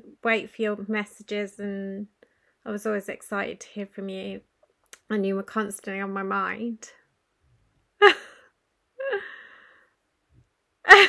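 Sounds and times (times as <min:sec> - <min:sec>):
person's breathy laugh: 0:08.0 - 0:09.7
person breathing: 0:09.1 - 0:10.0.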